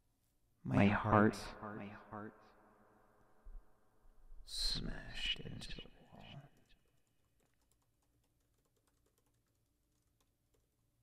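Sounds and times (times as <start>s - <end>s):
faint keyboard typing: 6.1s - 11.0s.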